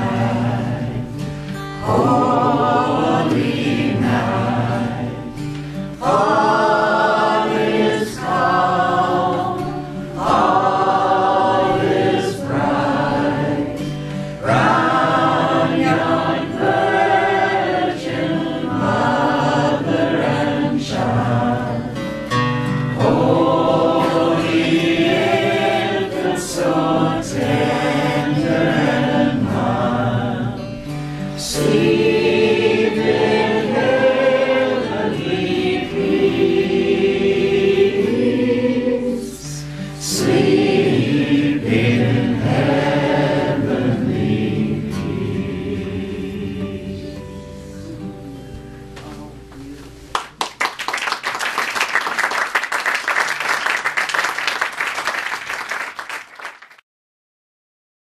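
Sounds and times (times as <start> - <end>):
man and woman singing in harmony: 0.0 - 22.1, 22.9 - 48.5
acoustic guitars: 0.0 - 50.8.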